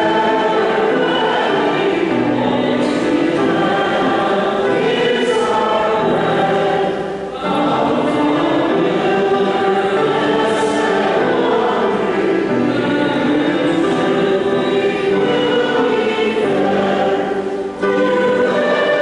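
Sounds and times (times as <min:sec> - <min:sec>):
choir singing a hymn: 0:00.0 - 0:19.0.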